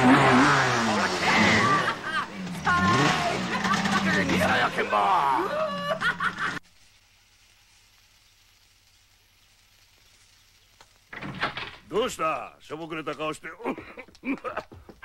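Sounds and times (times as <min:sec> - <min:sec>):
man laughing and exclaiming: 0:00.4 - 0:06.6, 0:13.4 - 0:14.9.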